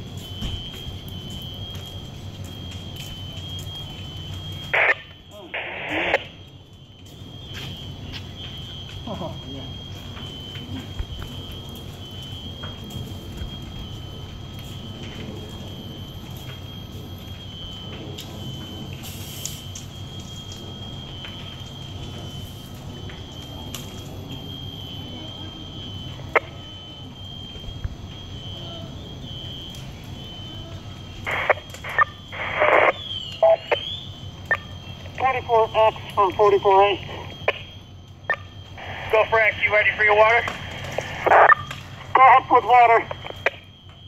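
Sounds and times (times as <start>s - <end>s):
smoke alarm beeping: 0.0s - 44.0s.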